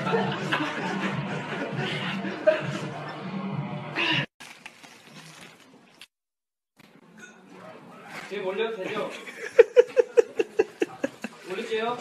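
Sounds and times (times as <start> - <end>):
men laughing loudly: 0.0 - 3.1, 8.9 - 11.4.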